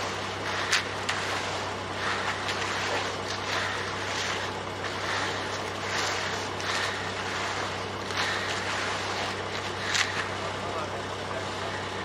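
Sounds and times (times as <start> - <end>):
engine humming: 0.0 - 12.0
rakes scraping wet concrete: 0.0 - 12.0.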